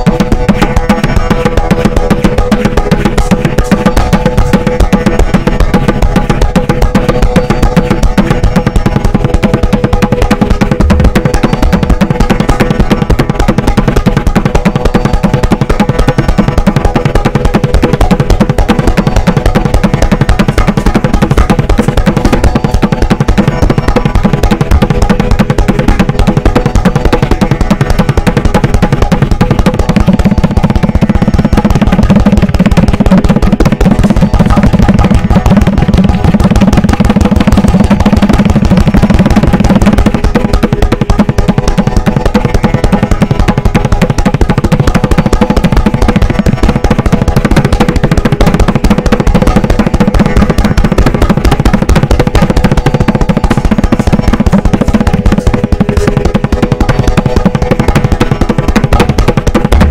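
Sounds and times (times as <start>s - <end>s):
deep bass drum: 0.0s - 59.9s
rapid tabla strokes: 0.0s - 59.9s.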